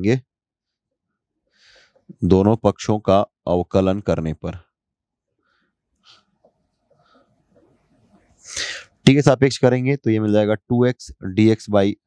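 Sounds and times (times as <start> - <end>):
person speaking: 2.1 - 4.6
sharp intake of breath: 8.3 - 9.0.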